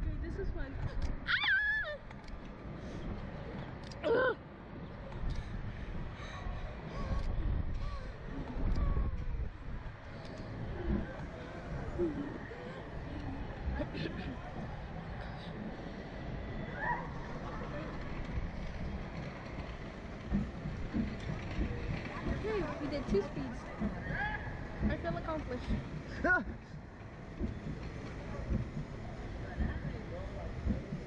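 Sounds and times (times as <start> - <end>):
wind buffeting microphone: 4.6 - 31.0
faint rider voices: 5.0 - 31.0.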